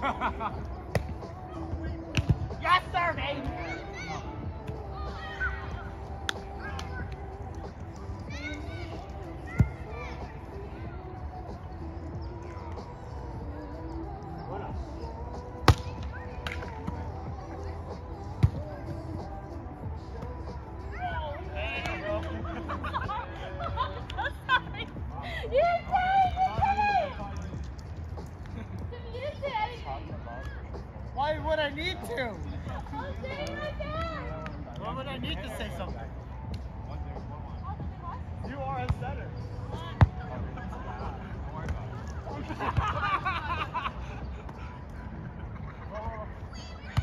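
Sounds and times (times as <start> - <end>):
players' voices: 0.0 - 47.0.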